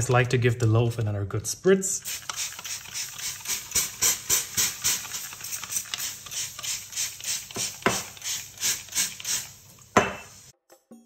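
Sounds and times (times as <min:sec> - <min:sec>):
spray bottle squirts hissing: 0:02.0 - 0:10.5.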